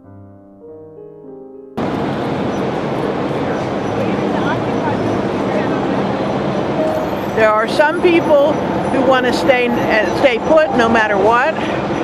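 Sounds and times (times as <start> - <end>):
city street noise roar: 1.8 - 12.0.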